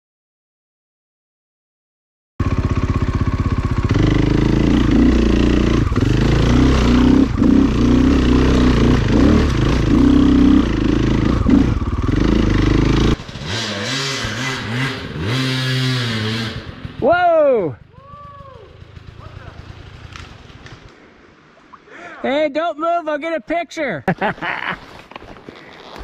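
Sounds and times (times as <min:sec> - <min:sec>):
dirt bike engine revving: 0:02.4 - 0:20.6
distant dirt bike revving: 0:02.4 - 0:20.9.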